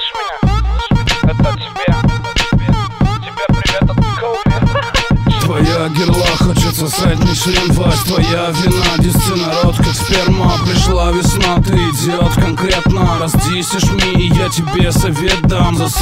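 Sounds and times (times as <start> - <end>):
rapping over a beat: 0.0 - 16.0.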